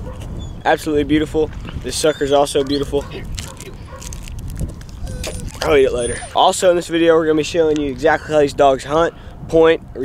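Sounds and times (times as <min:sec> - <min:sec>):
wind rumble on microphone: 0:00.0 - 0:10.0
plastic wrapper crinkling: 0:02.8 - 0:06.0.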